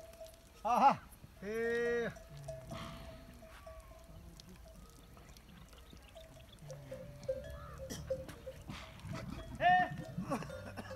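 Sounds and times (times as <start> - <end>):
camel bells ringing: 0.0 - 10.9
camels calling: 0.0 - 10.9.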